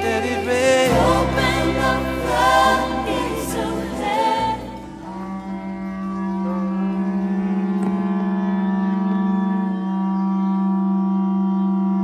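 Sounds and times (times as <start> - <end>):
ram's horns blown in a held blast: 5.0 - 12.0.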